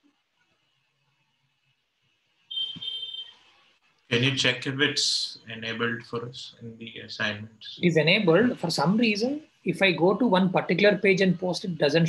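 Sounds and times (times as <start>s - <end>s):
high-pitched electronic beep: 2.5s - 3.3s.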